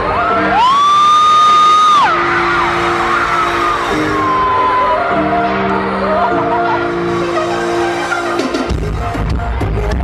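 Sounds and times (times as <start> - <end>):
live pop concert music: 0.0 - 10.0.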